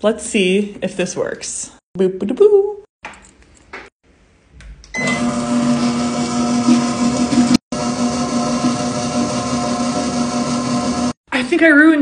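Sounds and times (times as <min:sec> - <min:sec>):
stand mixer motor humming: 0:05.0 - 0:11.2.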